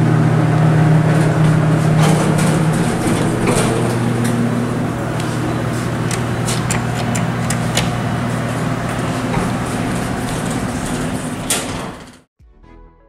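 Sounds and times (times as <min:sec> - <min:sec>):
elevator machinery humming: 0:00.0 - 0:12.3.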